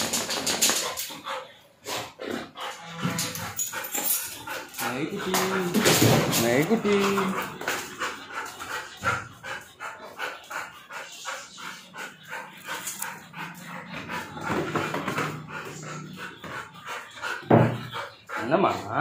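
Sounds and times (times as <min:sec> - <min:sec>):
dog panting: 0:00.0 - 0:19.0.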